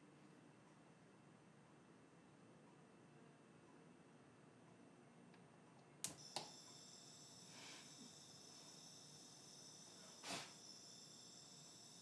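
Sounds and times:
faint hiss of gas: 0:06.1 - 0:12.0.

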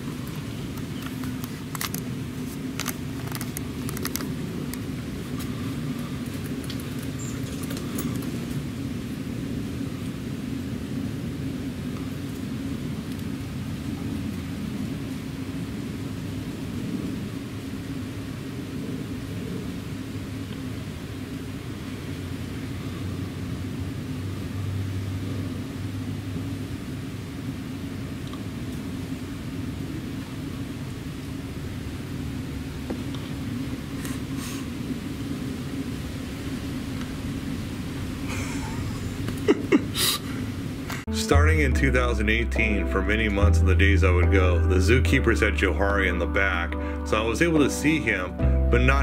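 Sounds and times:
low background rumble: 0:00.0 - 0:49.0.

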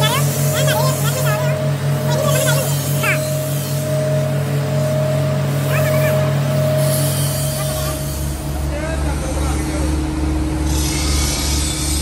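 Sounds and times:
polishing wheel humming: 0:00.0 - 0:09.9.

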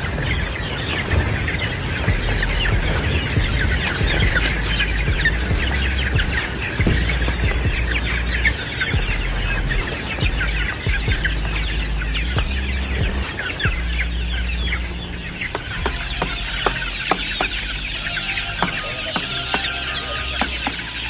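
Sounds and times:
chicks peeping and chirping: 0:00.0 - 0:21.0.

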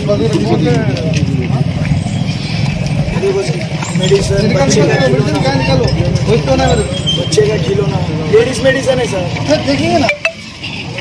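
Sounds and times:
men talking: 0:00.0 - 0:10.2
road traffic rumble: 0:00.0 - 0:11.0.

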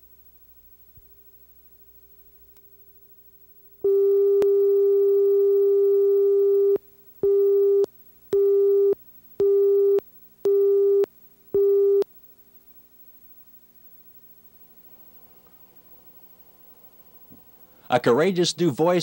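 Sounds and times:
steady electronic line-up tone: 0:03.8 - 0:12.0.

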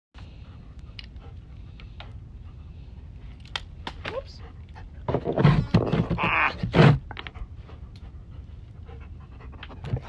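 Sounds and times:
dog panting: 0:00.2 - 0:05.2, 0:07.2 - 0:10.0.

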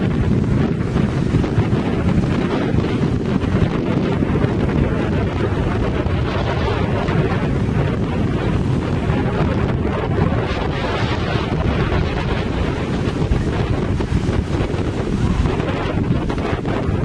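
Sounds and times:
wind buffeting microphone: 0:00.0 - 0:17.0.

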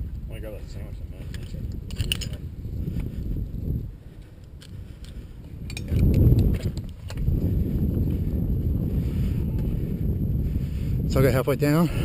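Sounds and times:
wind rumble on microphone: 0:00.0 - 0:12.0
metal climbing hardware clinking: 0:01.3 - 0:02.4, 0:04.6 - 0:07.2.

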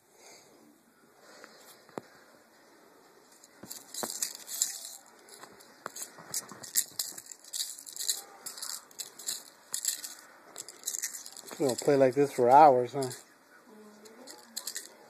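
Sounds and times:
light scratches and ticks: 0:03.3 - 0:13.3, 0:13.9 - 0:15.0.

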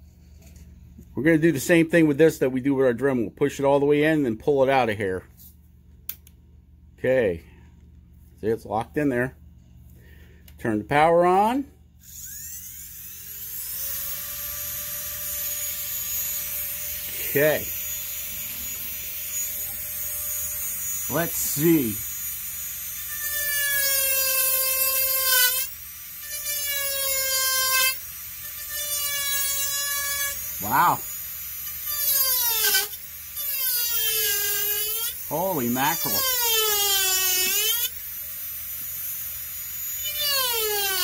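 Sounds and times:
rotary tool whine: 0:11.9 - 0:41.0.

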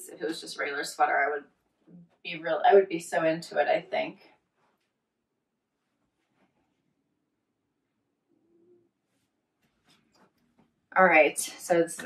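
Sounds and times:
faint soft rustles: 0:05.8 - 0:07.0, 0:08.6 - 0:10.8.

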